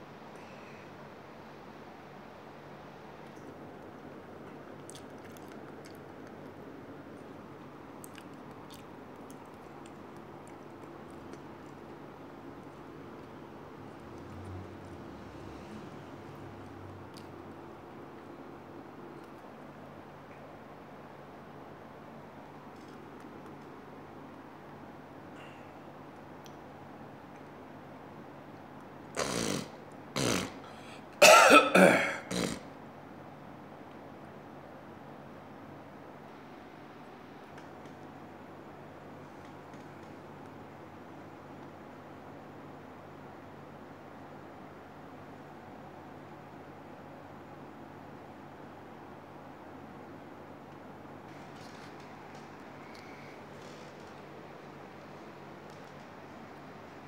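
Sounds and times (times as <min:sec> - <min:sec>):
steady low hum: 0:00.0 - 0:57.0
person chewing crunchy snacks: 0:04.8 - 0:06.6, 0:08.0 - 0:12.0
person coughing: 0:31.2 - 0:32.6.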